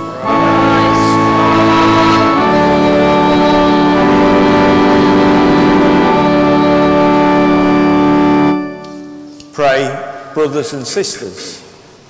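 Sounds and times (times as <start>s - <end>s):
organ chord held: 0.0s - 11.0s.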